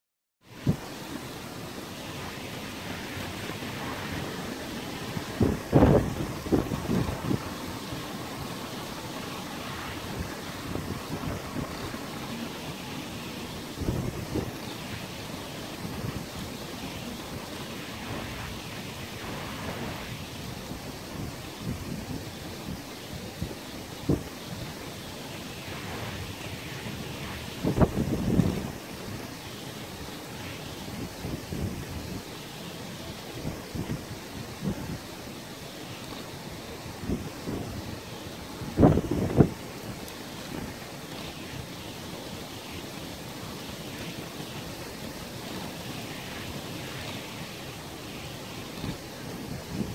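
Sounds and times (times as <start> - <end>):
steady wind hiss: 0.4 - 49.9
sea waves: 0.5 - 49.9
wind buffeting microphone: 3.0 - 12.7, 13.5 - 24.8, 25.7 - 29.4, 33.4 - 35.2, 36.7 - 41.5.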